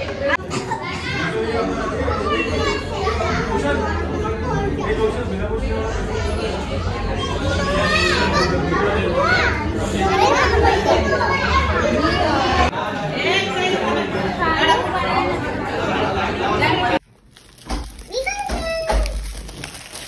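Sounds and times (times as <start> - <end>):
children calling and shouting: 0.0 - 17.0, 17.7 - 19.8
crowd talking: 0.0 - 17.0, 17.7 - 20.0.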